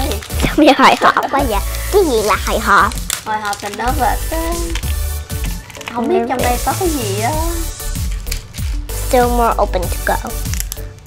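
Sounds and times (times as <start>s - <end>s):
girl's voice: 0.0s - 4.9s, 5.9s - 7.7s, 9.1s - 10.4s
background music with bass: 3.8s - 11.0s.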